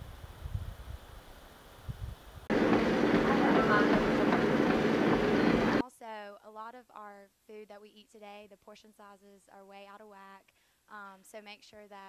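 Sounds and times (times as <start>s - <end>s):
faint wind rumble: 0.0s - 5.8s
treadmill belt and motor: 2.5s - 5.8s.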